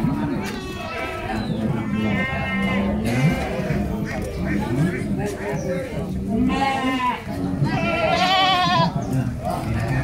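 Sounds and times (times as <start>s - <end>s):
low background chatter: 0.0s - 10.0s
goats bleating: 0.4s - 5.0s, 6.3s - 10.0s.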